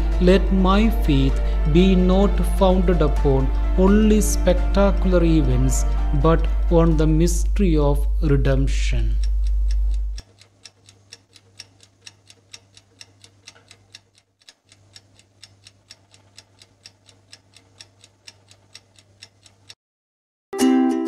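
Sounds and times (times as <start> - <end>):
clock ticking: 0.0 - 19.8
faint low hum: 4.4 - 10.2.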